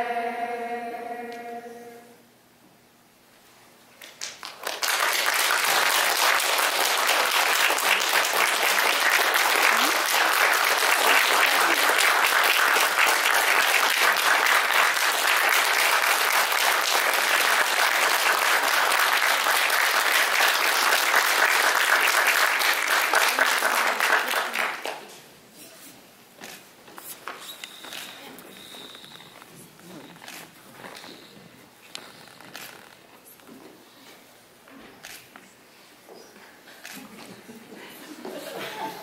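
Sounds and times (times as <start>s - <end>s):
audience applause: 4.2s - 25.0s.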